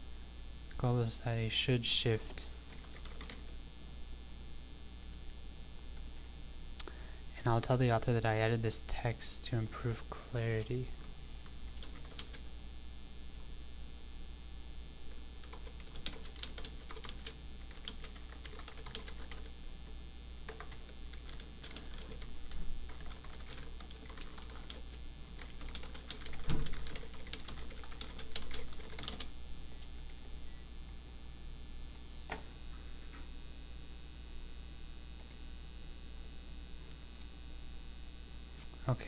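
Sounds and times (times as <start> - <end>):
steady low hum: 0.0 - 39.0
computer keyboard typing: 2.7 - 3.5, 11.7 - 12.4, 15.4 - 19.5, 20.5 - 29.3.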